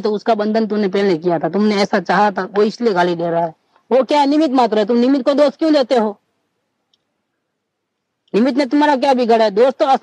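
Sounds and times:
man speaking: 0.0s - 6.2s, 8.3s - 10.0s
faint click: 6.9s - 7.1s.

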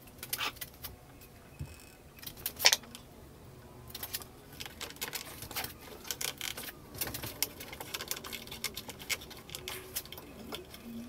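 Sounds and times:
plastic clicks and scrapes: 3.9s - 11.0s.

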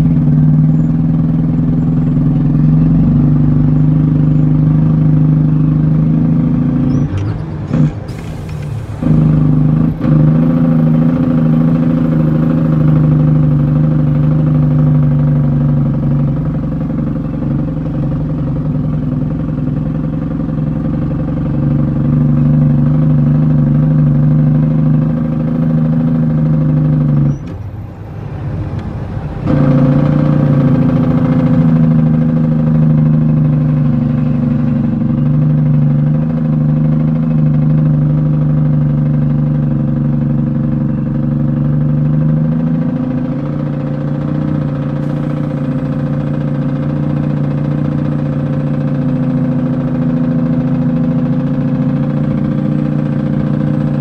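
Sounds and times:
truck diesel engine running: 0.0s - 54.0s.

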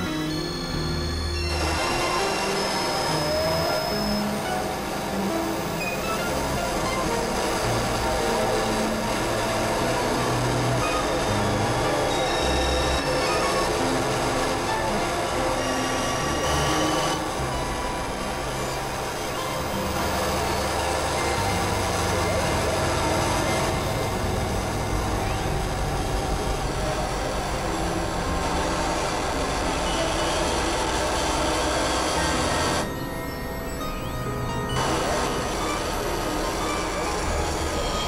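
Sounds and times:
noisy synthesizer drone: 0.0s - 33.8s, 34.8s - 38.0s.

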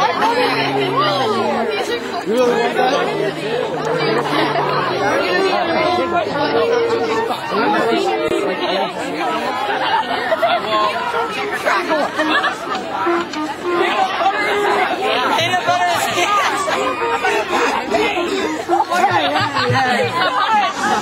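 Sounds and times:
teenagers talking over each other: 0.0s - 21.0s
laughter: 11.6s - 12.8s.

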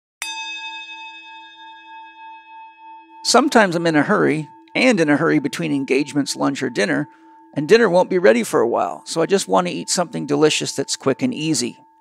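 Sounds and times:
chime ringing: 0.2s - 12.0s.

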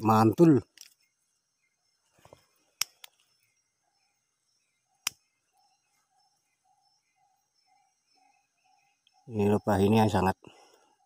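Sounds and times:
sharp clicks: 2.8s - 3.3s, 5.0s - 5.2s.

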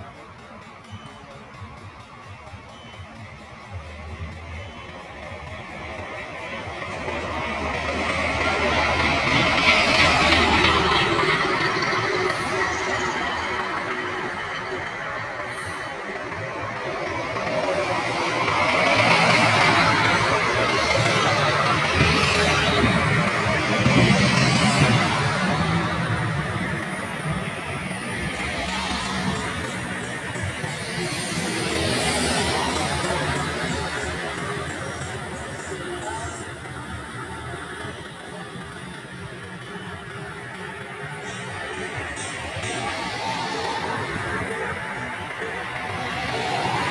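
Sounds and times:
music: 0.0s - 46.9s
road traffic passing: 0.0s - 46.9s.

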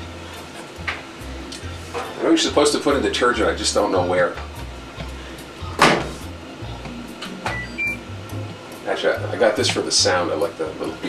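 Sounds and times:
background music: 0.0s - 11.0s
washing machine beeps: 7.5s - 8.0s.

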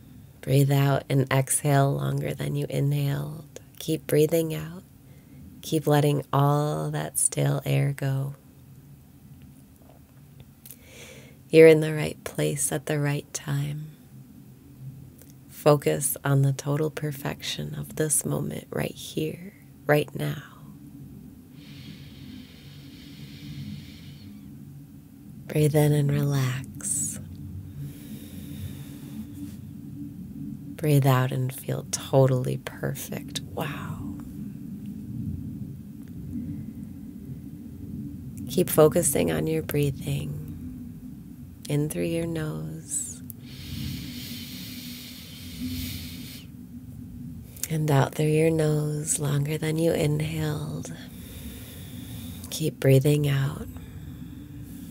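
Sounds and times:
faint low hum: 0.0s - 54.9s
woman breathing through nose: 10.8s - 11.4s, 21.6s - 24.5s, 27.8s - 29.6s, 43.4s - 46.5s, 51.1s - 52.5s, 53.8s - 54.9s
person inhaling through nose: 43.4s - 46.5s.

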